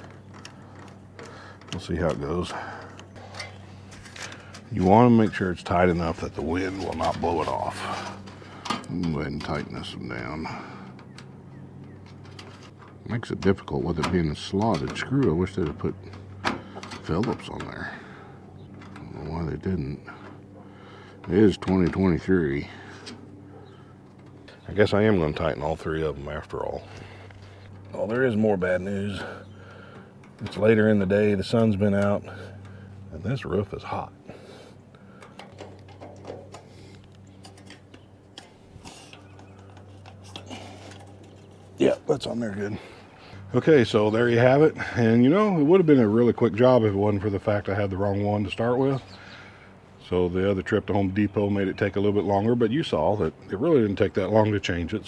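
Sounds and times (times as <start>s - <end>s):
low steady hum: 0.0s - 55.0s
bird calling: 22.5s - 30.4s, 34.0s - 43.5s, 48.7s - 49.8s.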